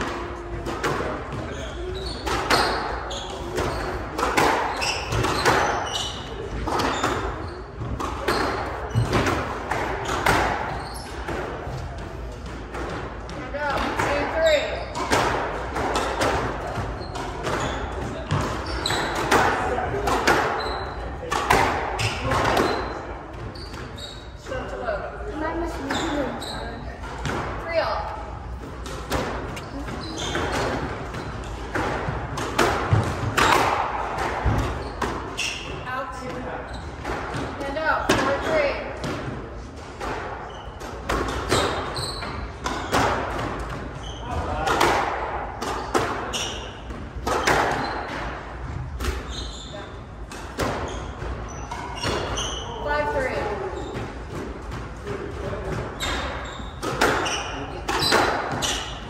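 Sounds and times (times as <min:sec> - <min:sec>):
squash ball impacts: 0:00.0 - 0:24.6, 0:25.3 - 0:59.0.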